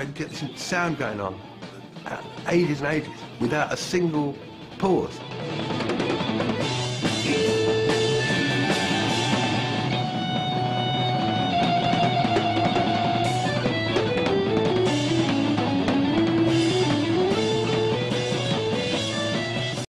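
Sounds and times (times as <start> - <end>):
drum kit: 0.0 - 19.9
long held lead notes: 5.6 - 19.8.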